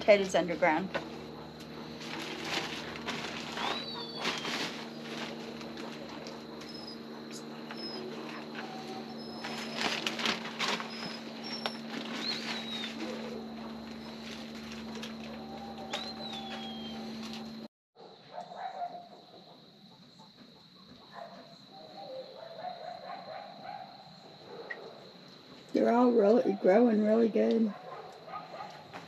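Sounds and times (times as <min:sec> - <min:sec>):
birds chirping: 0:00.0 - 0:17.7
whistled bird calls: 0:03.6 - 0:04.7, 0:10.9 - 0:13.4, 0:15.4 - 0:17.5.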